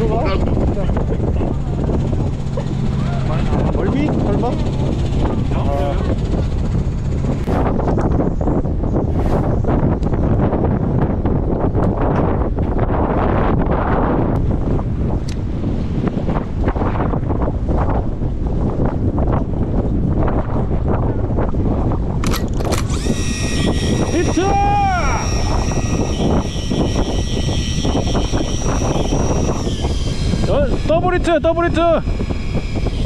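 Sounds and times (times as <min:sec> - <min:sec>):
boat and water rumble: 0:00.0 - 0:33.0
wind buffeting microphone: 0:00.0 - 0:33.0.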